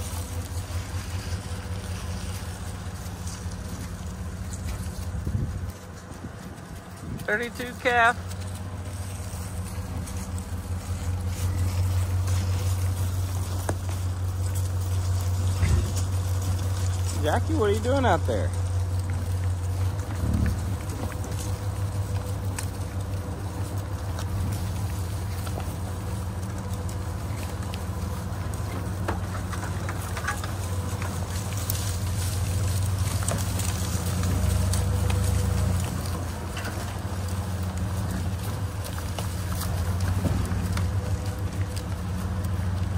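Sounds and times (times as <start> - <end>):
hooves on dry grass: 0.0 - 42.9
truck engine humming: 0.0 - 42.9.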